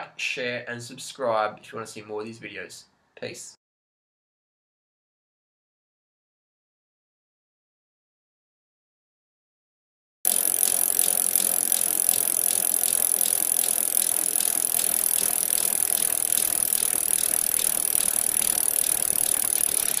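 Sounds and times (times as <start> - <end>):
faint regular ticks: 10.3 - 20.0.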